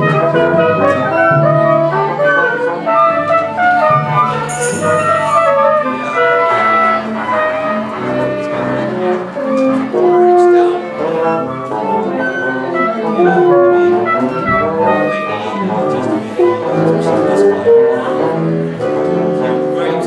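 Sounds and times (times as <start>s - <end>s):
strings and wind ensemble playing: 0.0s - 20.0s.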